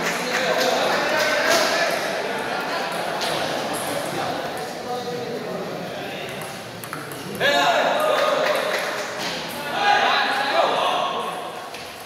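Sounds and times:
loud voices: 0.0s - 11.8s
table tennis ball clicking: 6.3s - 7.4s.

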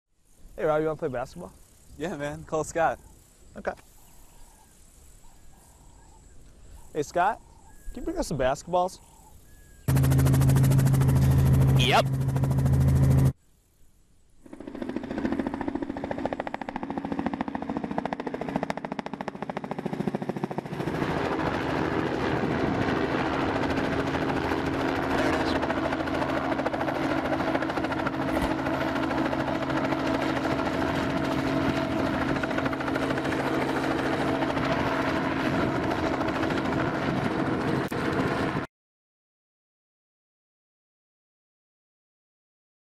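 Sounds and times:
helicopter rotor chop and engine: 9.6s - 13.4s, 14.4s - 38.7s.

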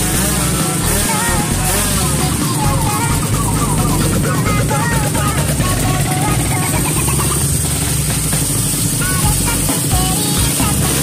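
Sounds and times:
motorcycle engine idling: 0.0s - 11.0s
music: 0.0s - 11.0s.

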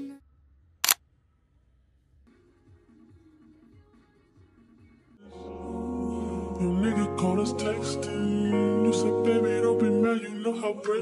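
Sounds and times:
background music: 5.2s - 11.0s.

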